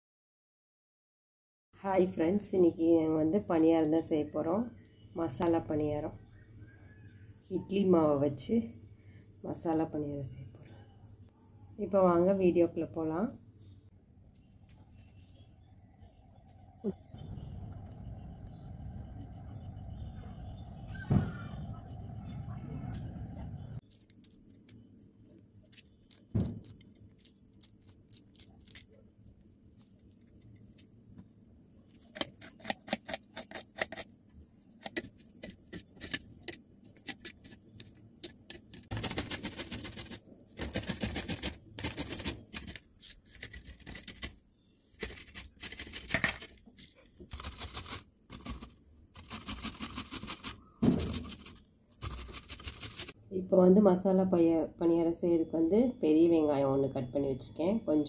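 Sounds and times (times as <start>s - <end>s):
handling noise with knocks: 50.4s - 53.1s.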